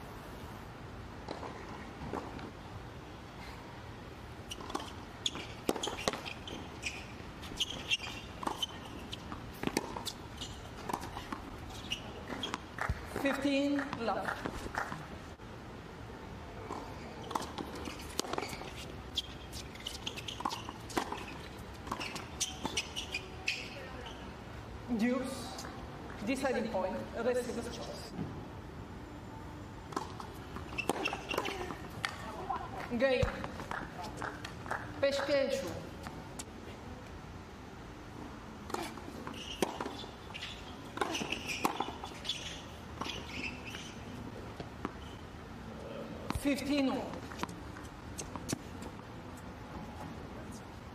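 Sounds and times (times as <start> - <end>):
shoes squeaking on court: 4.4 - 15.1, 16.6 - 24.4, 29.9 - 36.8, 38.6 - 45.3, 46.2 - 50.2
tennis ball bouncing: 4.5 - 15.0, 16.7 - 23.8, 29.9 - 36.5, 38.7 - 44.0
racket hitting tennis ball: 4.6 - 15.0, 16.7 - 23.7, 29.9 - 35.3, 38.7 - 44.0.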